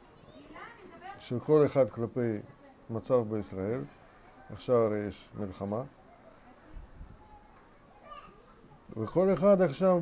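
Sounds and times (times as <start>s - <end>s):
children playing voices: 6.1s - 8.9s.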